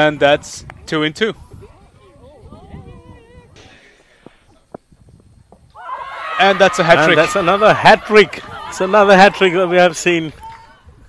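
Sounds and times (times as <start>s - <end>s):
fielders shouting appeal: 5.8s - 10.7s.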